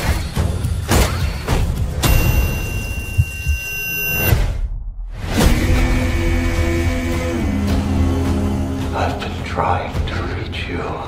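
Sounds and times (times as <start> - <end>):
high ringing tone: 2.0 - 4.4.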